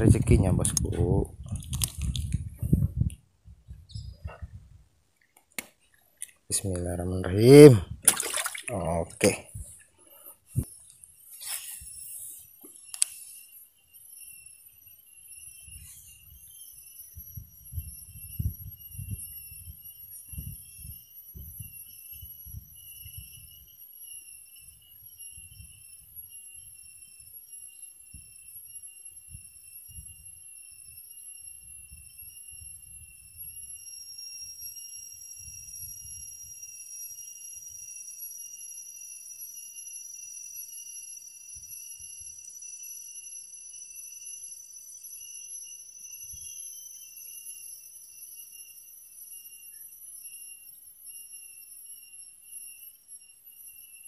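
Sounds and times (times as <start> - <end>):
higher insect tone: 0.0 - 5.3, 5.9 - 54.0
insects high-pitched ringing drone: 0.0 - 54.0.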